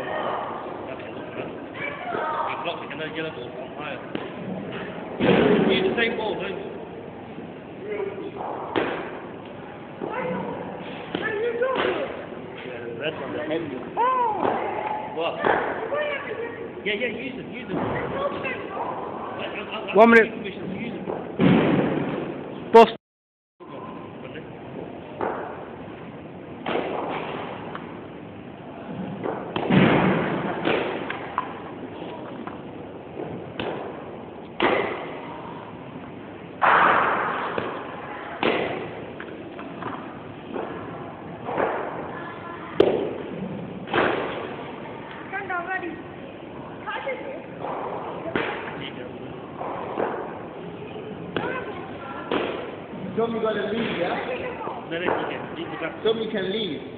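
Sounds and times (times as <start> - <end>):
voices: 30.3 - 56.5.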